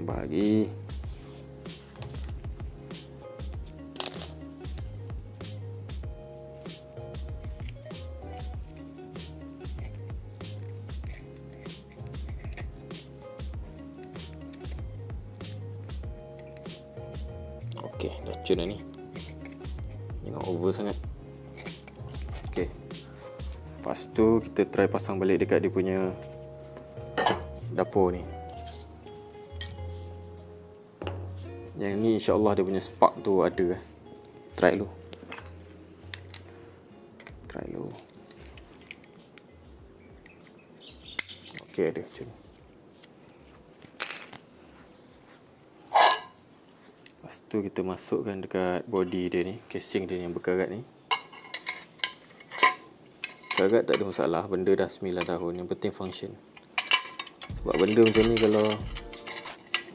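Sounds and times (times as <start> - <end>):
background music: 0.0 - 42.3, 56.9 - 59.9
tape tearing: 3.9 - 4.4.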